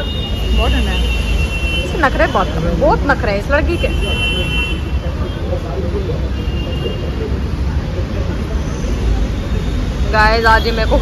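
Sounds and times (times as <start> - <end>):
low rumble of road traffic: 0.0 - 11.0.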